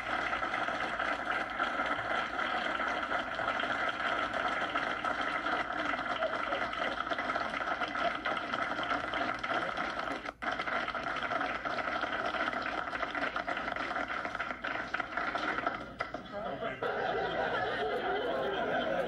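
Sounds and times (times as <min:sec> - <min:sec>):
crowd applauding: 0:00.0 - 0:19.0.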